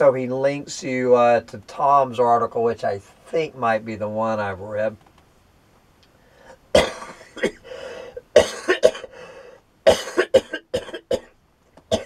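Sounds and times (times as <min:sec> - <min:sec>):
man coughing: 0:06.8 - 0:09.2, 0:09.9 - 0:11.3.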